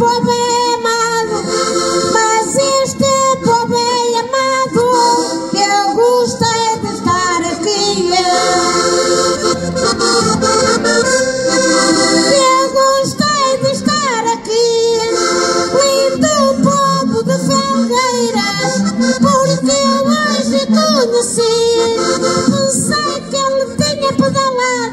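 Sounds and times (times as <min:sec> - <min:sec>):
woman singing: 0:00.0 - 0:08.9, 0:12.0 - 0:24.9
button accordions playing: 0:00.0 - 0:24.9.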